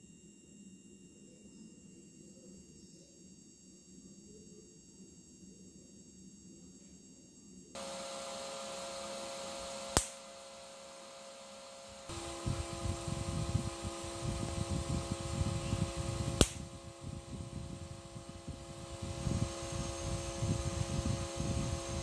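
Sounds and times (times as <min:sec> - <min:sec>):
high electrical whine over hum: 0:00.0 - 0:22.0
sharp electric snap: 0:09.8 - 0:12.2, 0:15.8 - 0:16.8.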